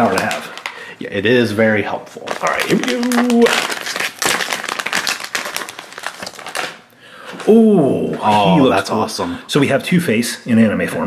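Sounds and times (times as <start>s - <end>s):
foil bag crinkling: 0.0s - 1.4s, 2.1s - 6.9s.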